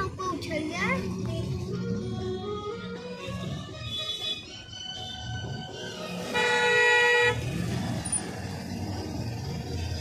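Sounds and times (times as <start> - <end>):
car driving on road: 0.0 - 10.0
vehicle horn honking: 3.8 - 5.3, 6.2 - 7.6.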